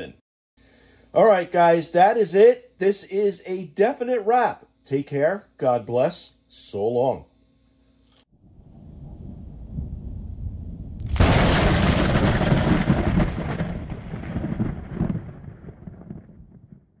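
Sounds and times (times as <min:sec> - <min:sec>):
thunder-like boom: 0:08.4 - 0:17.0.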